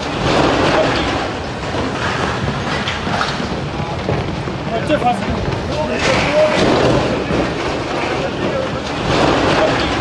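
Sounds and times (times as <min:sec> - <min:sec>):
rockslide rumbling and clattering: 0:00.1 - 0:10.0.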